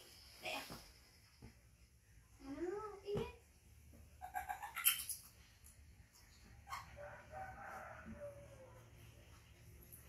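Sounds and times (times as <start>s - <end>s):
baby monkey squeaking: 4.2s - 5.4s.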